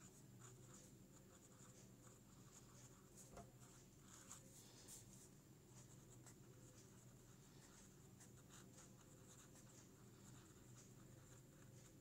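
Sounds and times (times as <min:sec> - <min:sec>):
pen scratching on paper: 0:00.0 - 0:12.0.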